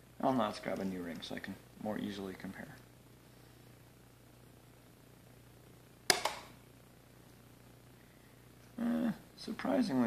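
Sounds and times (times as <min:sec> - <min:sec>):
faint steady hum: 0:00.0 - 0:10.0
welder sharp crack: 0:06.1 - 0:06.6.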